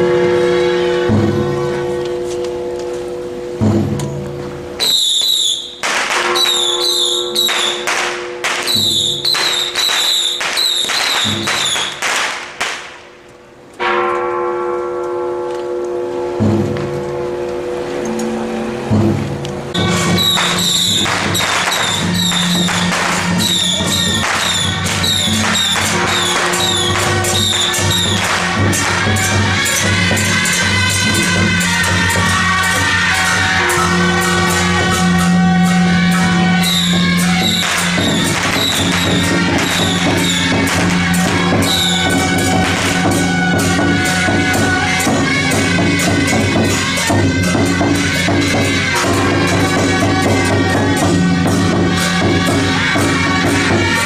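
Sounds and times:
held melodic tone: 0:00.0 - 0:12.1, 0:13.8 - 0:54.0
cymbals and gongs clashing: 0:00.0 - 0:54.0.

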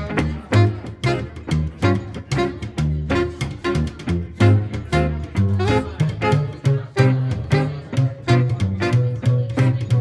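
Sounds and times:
alto saxophone melody: 0:00.0 - 0:10.0
plucked double bass: 0:00.0 - 0:10.0
strummed guitar chords: 0:00.0 - 0:10.0.

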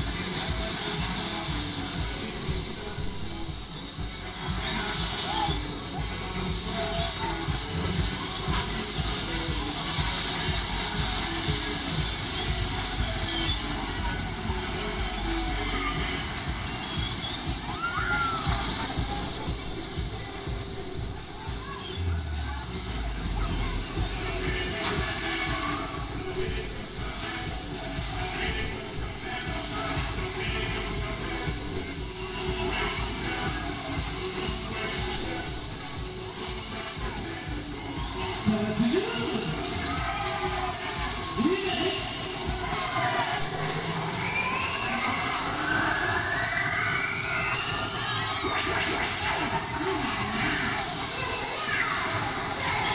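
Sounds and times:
fairground ride metallic squeal: 0:00.0 - 0:52.9.

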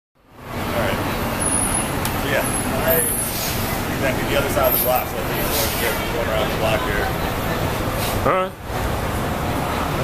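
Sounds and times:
city street traffic: 0:00.2 - 0:10.0
faint voices talking: 0:02.1 - 0:08.7.

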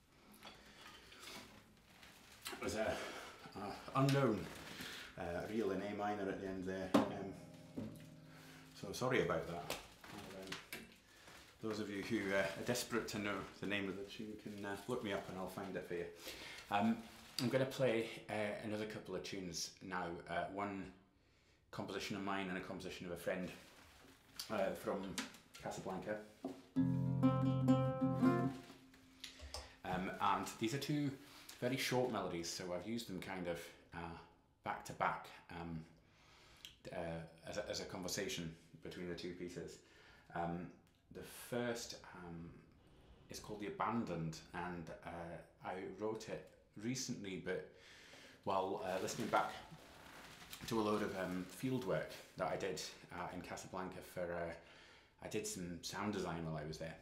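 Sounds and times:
guitar knocks: 0:06.9 - 0:08.9
nylon-string guitar chord strummed: 0:07.0 - 0:09.5, 0:26.8 - 0:29.0.

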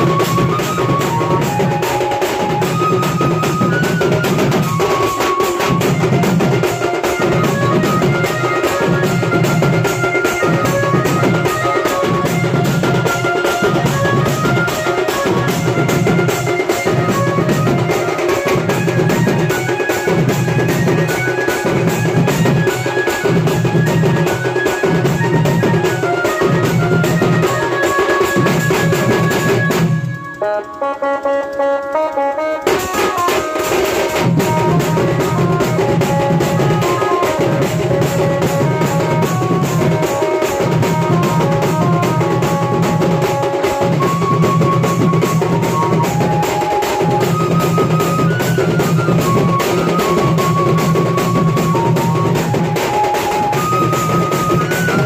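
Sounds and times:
fast drum roll: 0:00.0 - 0:30.3, 0:32.6 - 0:55.0
high melody of held notes: 0:00.0 - 0:55.0.

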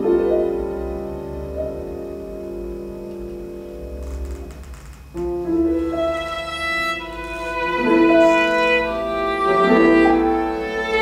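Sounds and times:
violin and piano chamber music: 0:00.0 - 0:11.0.

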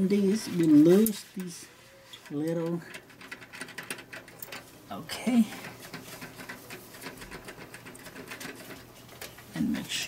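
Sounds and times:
fingers clicking and scraping wire: 0:00.0 - 0:10.0.

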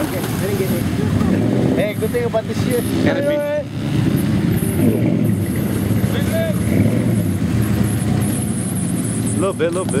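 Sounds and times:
pickup truck engine passing: 0:00.0 - 0:10.0.

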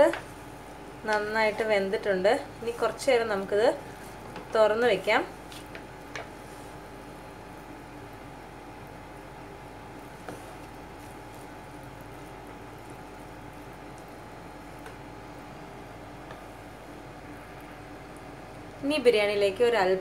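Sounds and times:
wooden spatula stirring rice: 0:03.8 - 0:07.0, 0:09.7 - 0:15.0.

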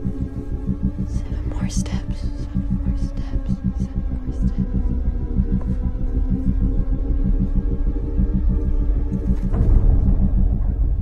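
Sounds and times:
fast even pulse: 0:00.0 - 0:11.0
tense low throbbing drone: 0:00.0 - 0:11.0.

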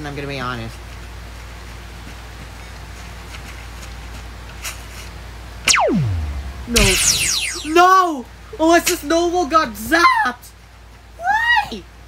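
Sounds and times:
cartoon zap falling whistle: 0:05.7 - 0:08.0
low steady hum: 0:05.7 - 0:08.2.

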